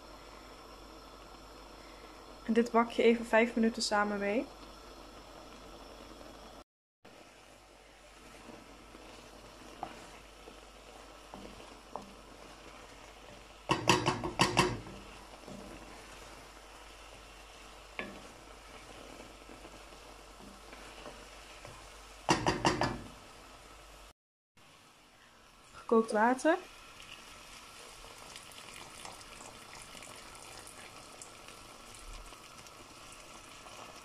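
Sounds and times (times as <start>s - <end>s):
mushrooms sizzling in butter: 0.0s - 34.0s
wooden spoon stirring: 7.4s - 23.1s
wooden spoon knocking on pot: 13.7s - 15.7s, 22.3s - 23.1s.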